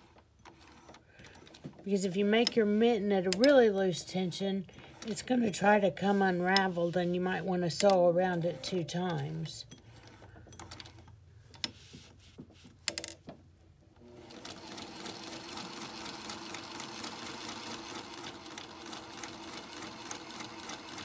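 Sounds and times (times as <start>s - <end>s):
sewing machine stitching: 14.0s - 21.0s.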